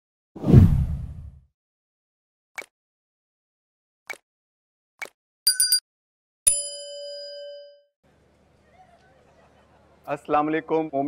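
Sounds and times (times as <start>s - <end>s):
deep whoosh: 0.4s - 1.4s.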